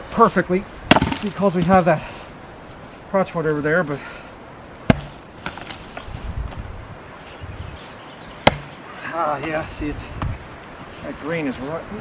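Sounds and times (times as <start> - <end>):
axe striking wood: 0.9 - 1.4, 4.9 - 5.8, 8.4 - 8.8.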